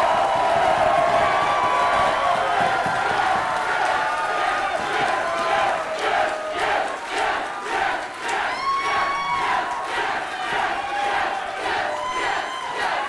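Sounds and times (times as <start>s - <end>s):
crowd cheering and shouting: 0.0s - 13.0s.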